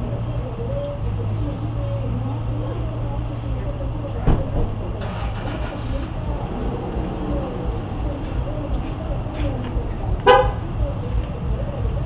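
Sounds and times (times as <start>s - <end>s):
low rumble of vehicle: 0.0s - 12.0s
vehicle horn toot: 10.2s - 10.6s.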